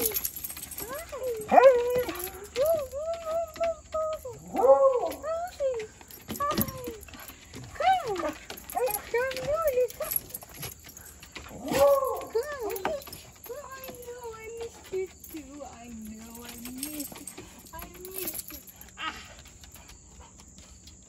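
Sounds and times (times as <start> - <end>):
dogs whining and howling: 0.0 - 19.9.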